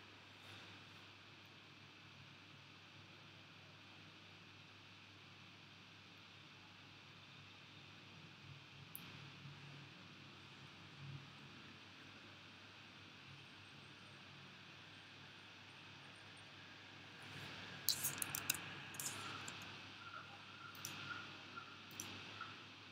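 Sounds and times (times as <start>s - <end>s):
sharp computer clicks: 17.9s - 19.6s.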